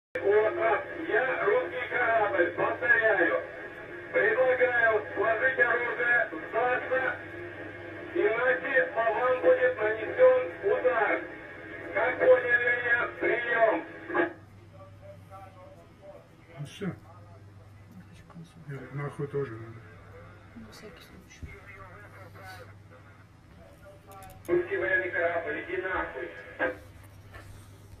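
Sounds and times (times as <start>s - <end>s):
man's voice over radio: 0.2s - 7.3s, 8.1s - 17.6s, 21.3s - 26.9s
faint low hum: 0.2s - 28.0s.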